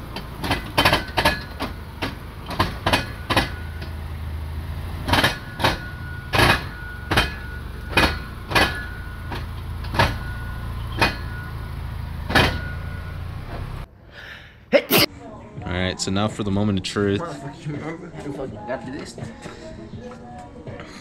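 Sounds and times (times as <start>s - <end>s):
car engine idling: 0.0s - 14.0s
sharp knocks: 0.1s - 4.1s, 5.0s - 13.8s.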